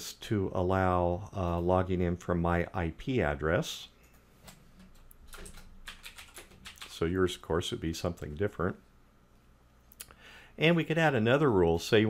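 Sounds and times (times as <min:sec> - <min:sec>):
computer keyboard typing: 0:04.9 - 0:07.0.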